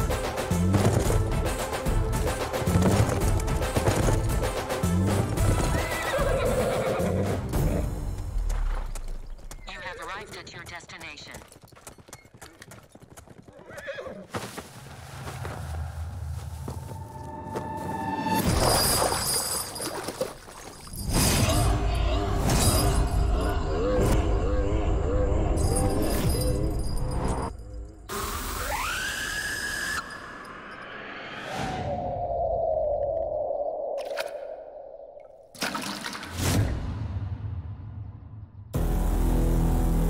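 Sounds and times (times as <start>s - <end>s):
dramatic film score: 0.0s - 11.2s, 15.2s - 19.7s, 21.0s - 40.0s
galloping horse hoofbeats: 0.4s - 14.7s
horse whinnying: 5.5s - 7.4s, 13.5s - 14.3s
film score music with heavy bass: 6.4s - 9.0s, 36.4s - 40.0s.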